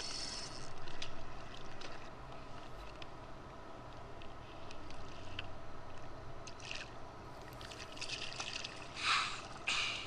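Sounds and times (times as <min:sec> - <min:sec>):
water lapping and splashing: 0:06.5 - 0:09.7.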